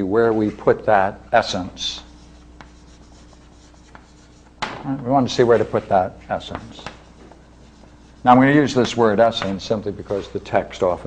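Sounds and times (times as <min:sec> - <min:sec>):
low steady hum: 0:00.0 - 0:11.0
chalk scratching on blackboard: 0:01.4 - 0:04.6, 0:05.3 - 0:11.0
chalk tapping: 0:01.4 - 0:11.0.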